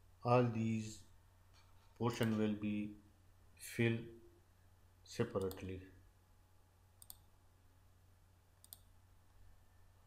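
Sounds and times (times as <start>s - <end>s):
low steady hum: 0.0s - 10.0s
computer mouse clicks: 2.2s - 2.4s, 7.0s - 7.3s, 8.6s - 8.9s.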